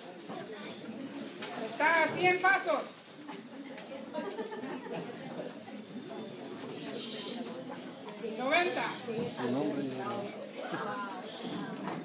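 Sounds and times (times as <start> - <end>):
low talk of people: 0.0 - 12.0.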